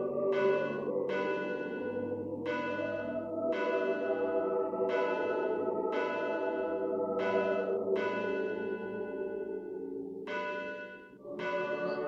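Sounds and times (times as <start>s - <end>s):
steady low sustained tone: 0.0s - 10.3s
bells ringing: 0.0s - 12.0s.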